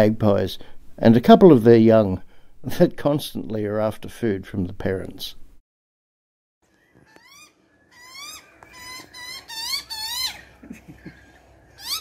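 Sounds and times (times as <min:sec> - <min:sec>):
young magpie begging calls: 0:07.1 - 0:10.5, 0:11.8 - 0:12.0.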